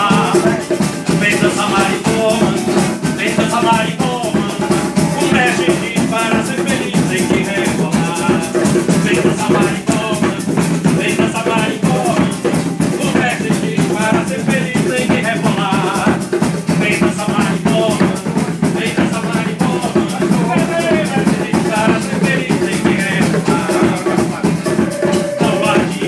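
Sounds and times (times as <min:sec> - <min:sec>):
acoustic guitar: 0:00.0 - 0:26.0
bongos: 0:00.0 - 0:26.0
wavering melody line: 0:00.1 - 0:06.0, 0:24.6 - 0:26.0.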